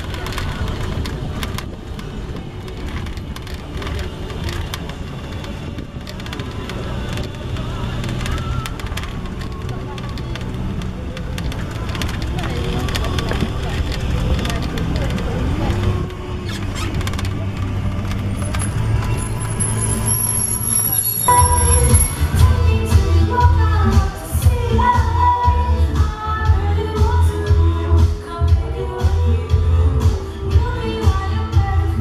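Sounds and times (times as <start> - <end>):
background music: 0.0 - 32.0
small vehicle rumbling: 0.0 - 32.0.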